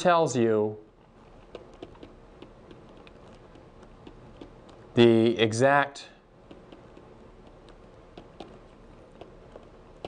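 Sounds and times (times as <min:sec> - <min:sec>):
stylus tapping on tablet: 0:01.3 - 0:05.0, 0:06.4 - 0:10.0.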